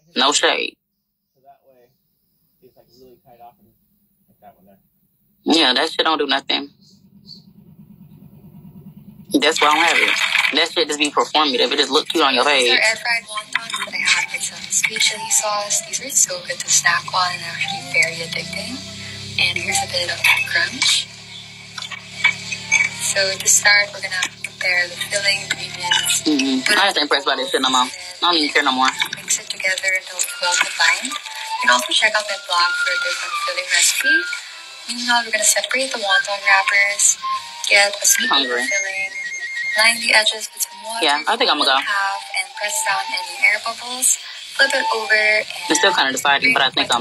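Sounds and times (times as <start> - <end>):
faint speech: 1.4 - 1.9, 2.6 - 3.7, 4.4 - 4.8, 5.5 - 6.7, 9.3 - 21.0, 23.0 - 39.1, 39.8 - 47.0
faint high-pitched whine: 2.6 - 3.7, 5.5 - 47.0
low steady hum: 5.5 - 47.0.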